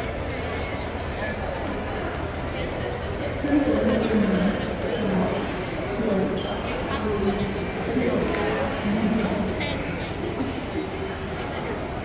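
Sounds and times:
indistinct chatter of shoppers: 0.0 - 12.0.

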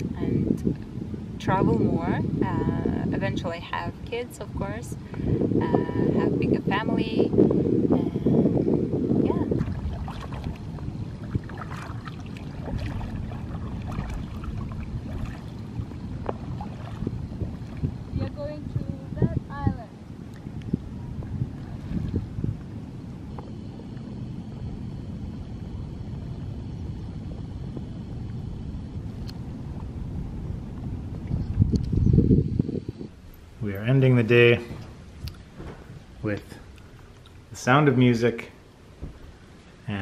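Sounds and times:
wind rumbling on microphone: 0.0 - 40.0
paddle splashing and dripping: 9.5 - 18.2.

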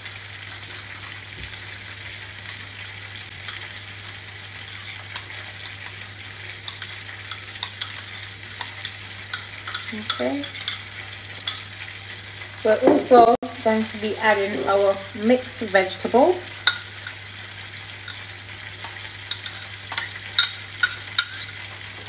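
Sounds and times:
crackling pops of frying: 0.0 - 13.4, 16.4 - 22.0
oil sizzling: 0.0 - 22.0.

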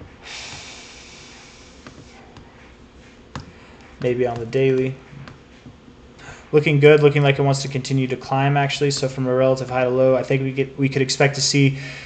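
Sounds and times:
breath out through nose: 0.2 - 1.8.

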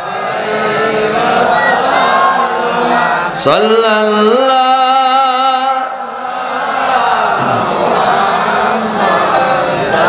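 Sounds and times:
faint diffuse chanting: 0.0 - 10.0
man chanting through microphone: 3.2 - 6.2.

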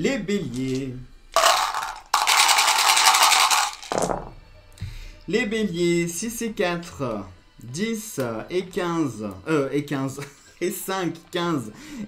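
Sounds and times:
dice rattling in a cup: 1.4 - 4.3.

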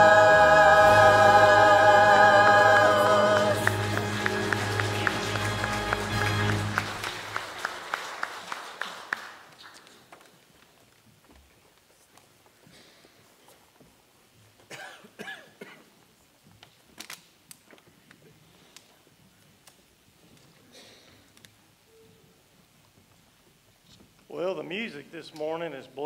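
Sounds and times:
church choir singing: 0.0 - 7.5
piano accompaniment: 0.0 - 7.7.

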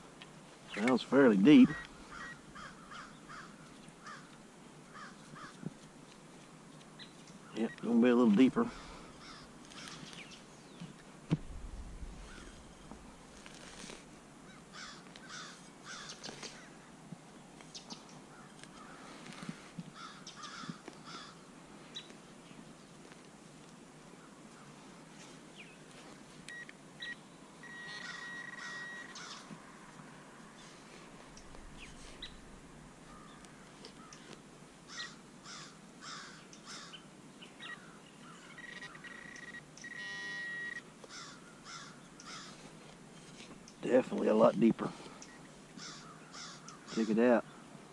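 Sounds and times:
crows cawing: 1.5 - 5.8, 8.6 - 10.1, 12.2 - 13.0, 14.4 - 16.8, 18.3 - 21.4, 27.7 - 29.5, 31.3 - 37.0, 37.7 - 42.7, 45.2 - 47.6
knife scraping into soil: 12.2 - 14.2
metal detector high tone: 27.6 - 29.2, 38.5 - 40.8.

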